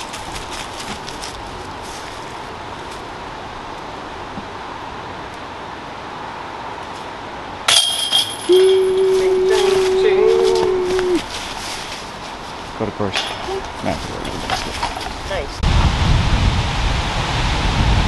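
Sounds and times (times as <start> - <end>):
disc hitting metal basket chains: 7.7 - 10.1, 13.2 - 13.6
steady held note: 8.3 - 11.3.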